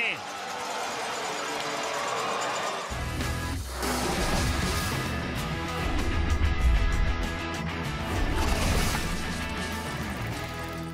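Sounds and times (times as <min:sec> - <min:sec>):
sports broadcast theme music: 0:00.0 - 0:08.1.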